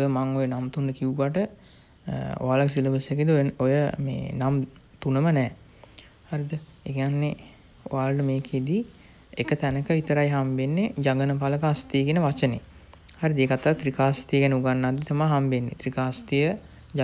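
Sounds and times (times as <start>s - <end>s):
high-pitched whine: 0.0s - 17.0s
man talking: 2.1s - 5.6s, 6.3s - 17.0s.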